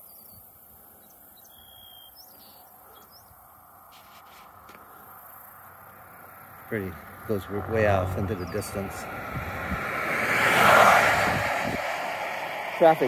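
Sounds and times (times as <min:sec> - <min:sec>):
thin bird chirps: 0:00.0 - 0:03.4.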